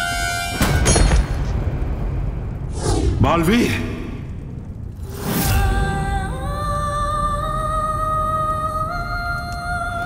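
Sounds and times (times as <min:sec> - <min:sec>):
low rumble: 0:01.4 - 0:10.0.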